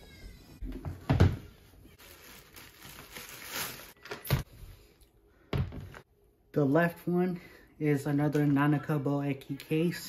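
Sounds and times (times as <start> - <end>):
plastic wrapping crinkling: 1.9 - 4.4.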